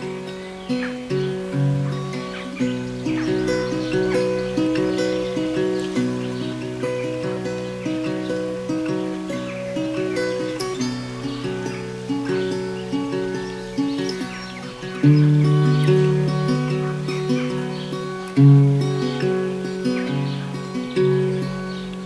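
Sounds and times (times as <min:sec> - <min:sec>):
tenor guitar picked notes: 0:00.0 - 0:22.0.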